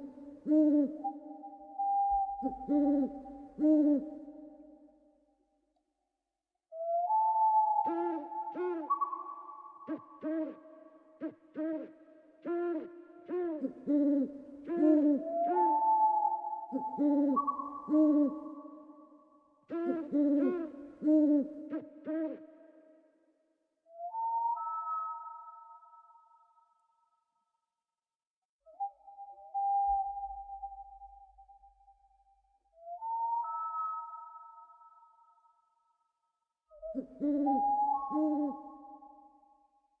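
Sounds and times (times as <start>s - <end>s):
owl hooting: 0.0s - 4.7s, 6.8s - 23.0s, 36.7s - 39.5s.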